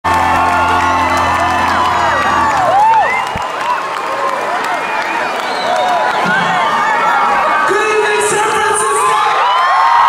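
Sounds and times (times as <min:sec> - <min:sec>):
rock band sustained chord: 0:00.0 - 0:03.4
crowd cheering: 0:00.0 - 0:10.0
high whoops: 0:00.1 - 0:07.2, 0:09.0 - 0:10.0.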